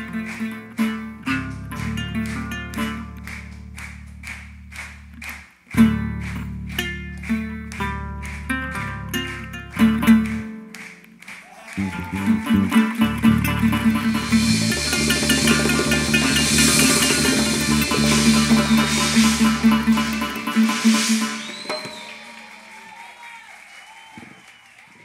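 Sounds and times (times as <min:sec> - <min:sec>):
held bass: 0:00.0 - 0:10.7, 0:11.8 - 0:22.5
plucked string line: 0:00.0 - 0:11.1, 0:11.8 - 0:22.6
hand claps: 0:00.0 - 0:25.0
djembe drums: 0:12.8 - 0:22.5
cymbals: 0:13.0 - 0:23.3.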